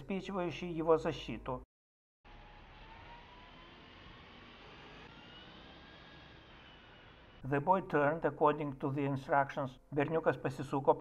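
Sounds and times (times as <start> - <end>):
faint rising whines: 2.3 - 7.5.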